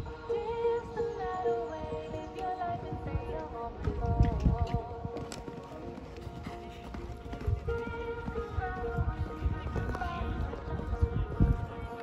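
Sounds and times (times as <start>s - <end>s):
background music: 0.0s - 12.0s
horse hoofbeats on sand: 3.8s - 11.6s.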